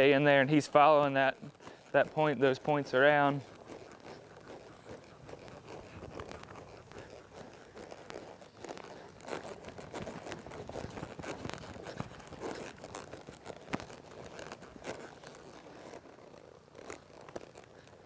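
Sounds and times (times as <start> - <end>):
horse hooves on soft dirt: 0.0 - 18.0
rustling: 0.0 - 18.0.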